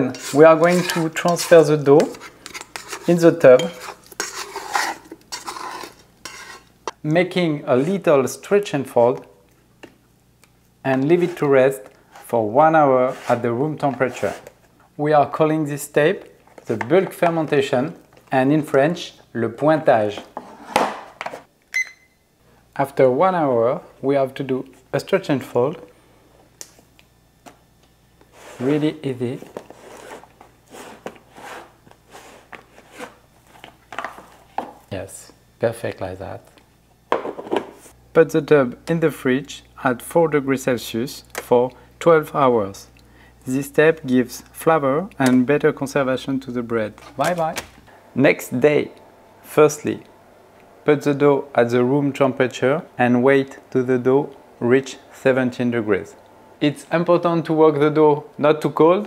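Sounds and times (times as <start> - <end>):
dough scraping and rubbing in bowl: 0.0 - 6.8, 11.1 - 11.5, 13.0 - 14.6, 28.3 - 33.7.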